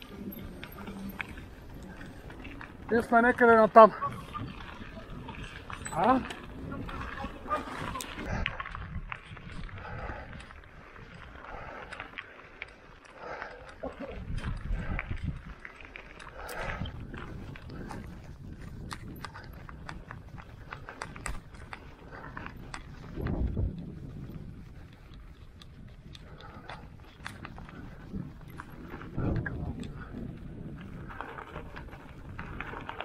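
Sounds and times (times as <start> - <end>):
wind rumble on microphone: 0.0 - 12.2, 13.6 - 33.0
bike rattling on stony track: 0.0 - 33.0.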